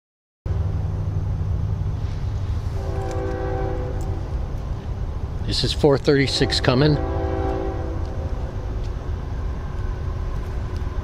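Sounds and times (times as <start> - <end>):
steady low rumble: 0.5 - 11.0
distant locomotive air horn: 2.7 - 4.4, 6.2 - 8.7.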